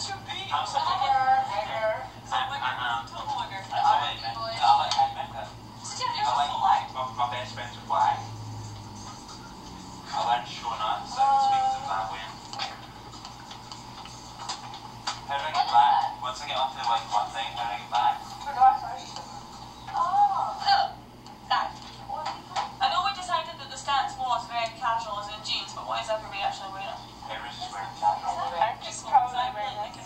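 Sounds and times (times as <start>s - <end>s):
woman talking through tv speaker: 0.0s - 8.3s, 15.3s - 16.4s, 18.4s - 19.2s, 19.9s - 30.0s
background hum and hiss: 0.0s - 30.0s.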